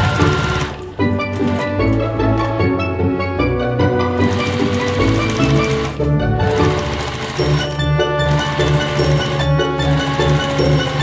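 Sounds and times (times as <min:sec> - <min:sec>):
sewing machine running: 0:00.0 - 0:02.8, 0:04.0 - 0:11.0
background music: 0:00.0 - 0:11.0.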